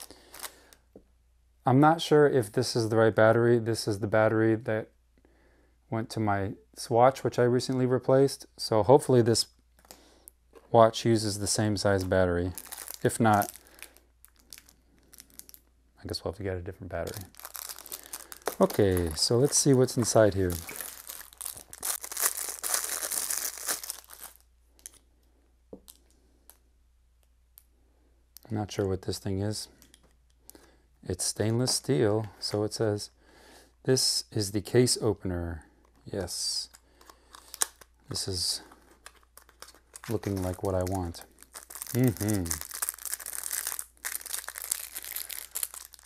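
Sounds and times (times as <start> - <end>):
plastic packaging crinkling and tearing: 0.0 - 0.8, 11.4 - 15.7, 17.0 - 25.0, 36.7 - 46.0.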